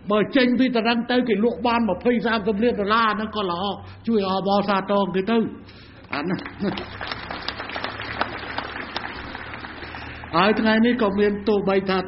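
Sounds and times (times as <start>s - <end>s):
audience applause: 6.1s - 10.6s.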